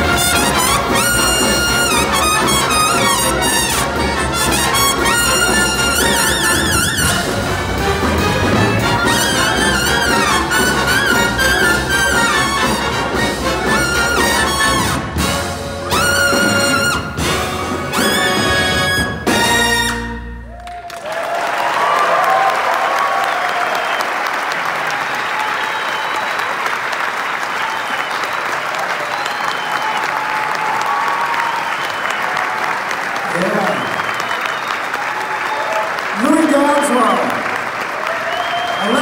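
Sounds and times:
big band music: 0.0 - 20.8
cheers and whistles: 20.5 - 37.2, 38.0 - 39.0
audience applauding: 20.5 - 39.0.

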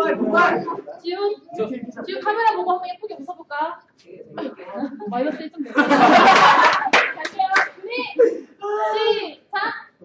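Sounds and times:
people talking: 0.0 - 3.8
group hand clapping: 6.2 - 7.8.

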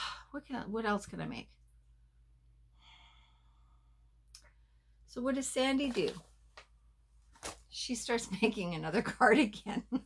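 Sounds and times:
woman breathing: 0.0 - 0.4, 2.6 - 5.1
low room hum: 0.0 - 10.0.

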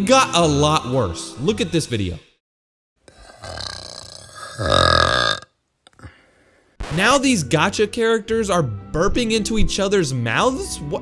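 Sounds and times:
long burp: 3.1 - 6.2.

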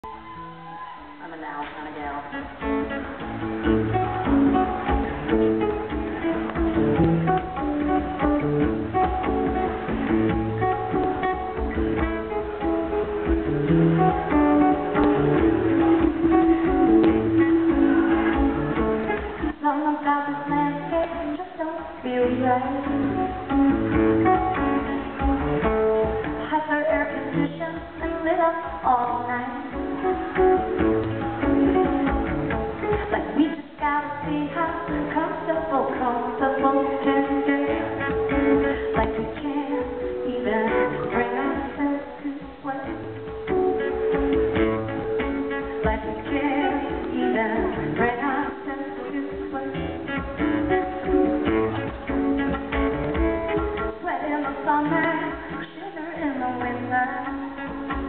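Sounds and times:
acoustic guitar picking and strumming: 0.0 - 58.0
woman singing: 0.0 - 58.0.

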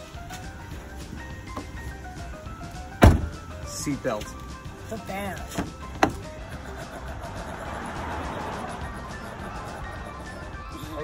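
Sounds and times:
background music: 0.0 - 11.0
car door slamming: 2.9 - 3.5, 5.5 - 6.3.

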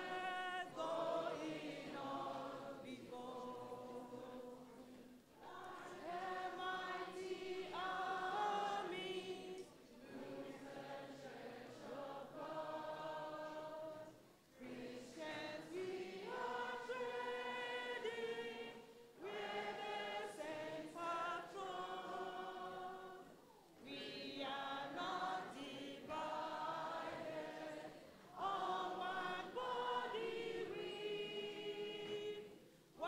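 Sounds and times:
children's choir singing: 0.0 - 33.0.

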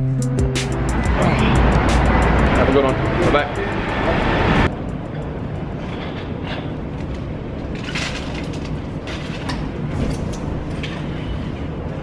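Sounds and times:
loud traffic noise: 0.0 - 6.7
indistinct voices: 0.8 - 4.7.

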